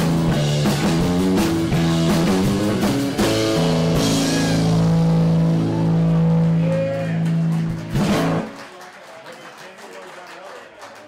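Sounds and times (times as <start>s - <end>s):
drum hit: 0.0s - 5.5s
guitars and bass ringing: 0.0s - 8.5s.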